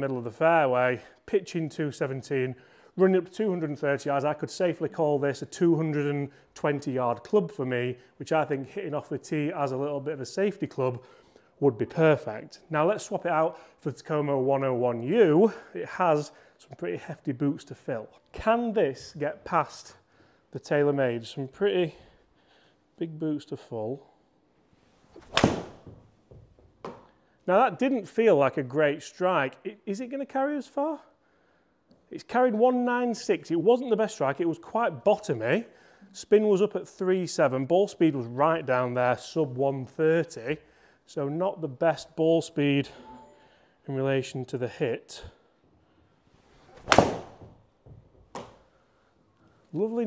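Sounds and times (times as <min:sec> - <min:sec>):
golf club striking ball: 0:25.2 - 0:26.0, 0:46.8 - 0:47.5.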